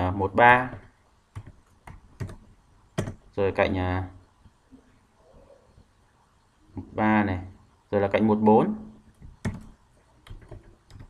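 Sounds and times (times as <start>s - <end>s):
computer keyboard typing: 0.6s - 3.2s, 9.1s - 11.0s.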